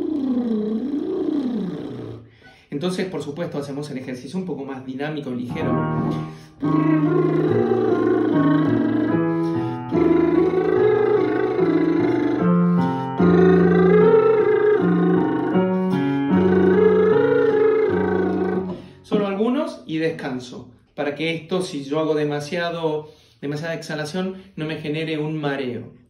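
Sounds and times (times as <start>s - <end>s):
man vocalising: 0.0s - 2.2s, 5.4s - 19.9s
digital piano chords: 5.3s - 20.0s.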